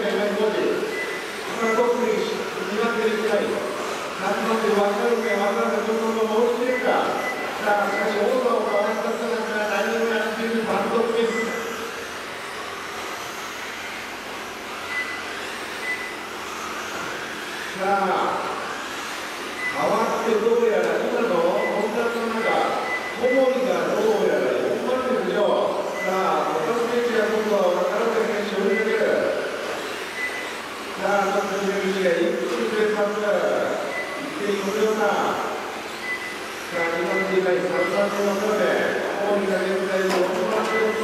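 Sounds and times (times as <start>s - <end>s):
electric motor and gear whine: 0.0s - 41.0s
short high electronic beeps: 11.2s - 11.6s, 21.6s - 23.4s, 33.8s - 34.3s, 36.0s - 36.4s, 40.6s - 41.0s.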